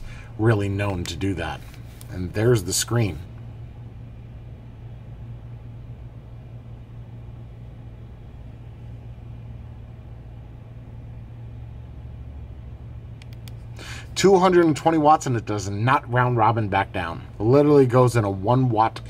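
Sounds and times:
low hum with faint hiss: 0.0 - 19.0.

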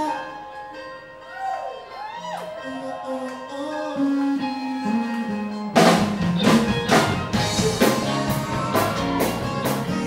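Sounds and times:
bass guitar: 0.0 - 10.0
electric guitar: 0.0 - 10.0.

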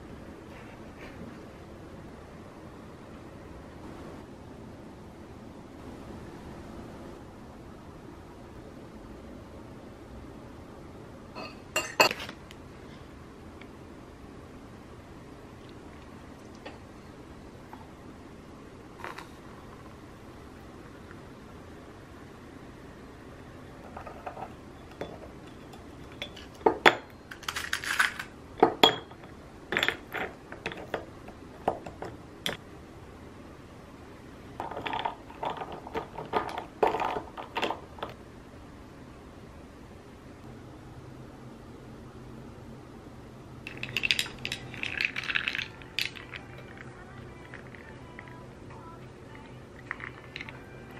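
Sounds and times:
metal straw clinking ice in glass: 43.7 - 48.3, 49.9 - 50.6.

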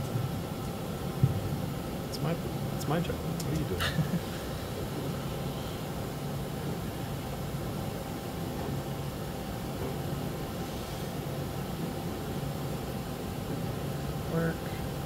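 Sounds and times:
machine hum with hiss: 0.0 - 15.0.

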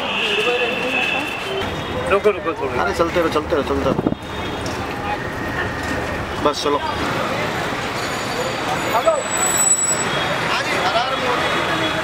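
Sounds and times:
crowd talking: 0.0 - 12.0
traffic noise: 0.0 - 12.0.

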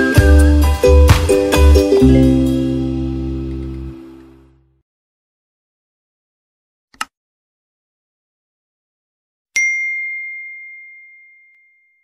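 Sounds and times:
bell-like ding: 9.6 - 12.0.

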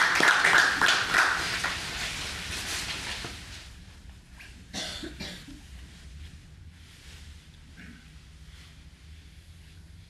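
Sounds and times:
person coughing: 4.7 - 5.6.

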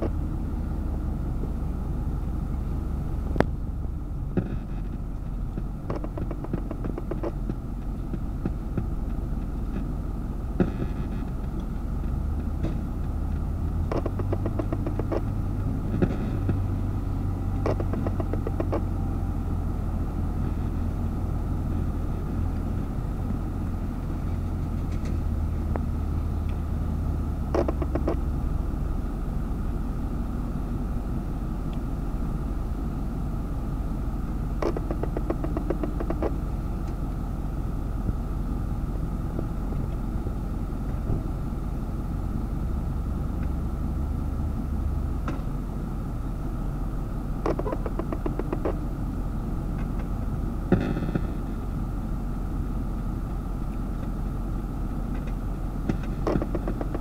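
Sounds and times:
diesel engine droning: 0.0 - 57.0.

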